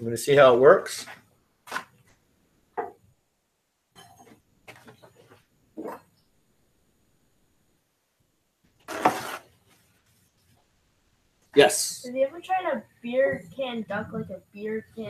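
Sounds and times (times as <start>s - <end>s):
faint knocks and rustles: 3.9s - 6.3s.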